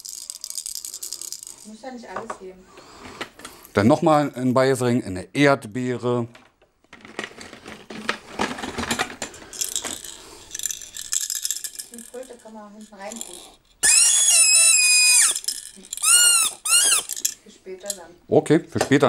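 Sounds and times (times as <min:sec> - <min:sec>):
toy trumpet rattling: 0:00.0 - 0:01.8, 0:09.4 - 0:18.0
toy trumpet tooting: 0:13.8 - 0:17.2.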